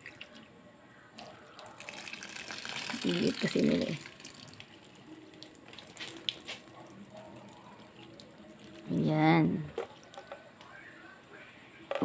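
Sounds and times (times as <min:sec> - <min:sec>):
water trickling and splashing: 0:01.2 - 0:10.2.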